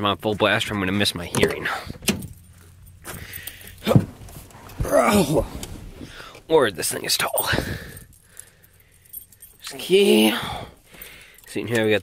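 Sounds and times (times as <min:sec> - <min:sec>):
rustling and handling noise: 0:01.2 - 0:09.8
keys jingling: 0:01.3 - 0:12.0
person grunting: 0:04.8 - 0:05.6, 0:10.0 - 0:10.7.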